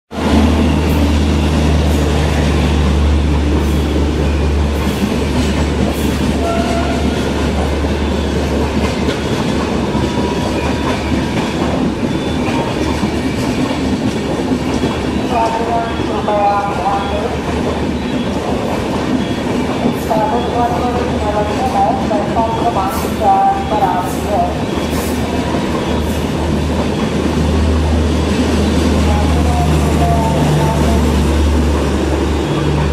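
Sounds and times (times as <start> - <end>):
deep locomotive hum: 0.1 - 32.9
train wheels rumbling on rails: 0.1 - 32.9.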